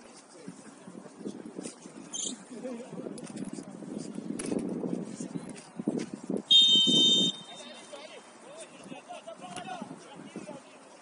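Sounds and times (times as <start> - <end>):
referee's whistle: 6.5 - 7.6.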